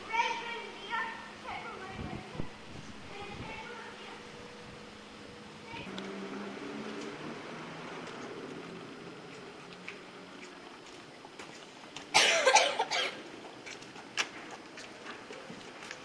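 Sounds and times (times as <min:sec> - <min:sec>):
person coughing: 0:12.1 - 0:13.2.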